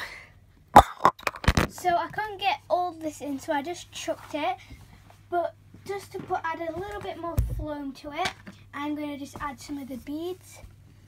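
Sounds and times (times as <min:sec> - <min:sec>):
girl speaking: 0:01.7 - 0:04.7, 0:05.3 - 0:10.7.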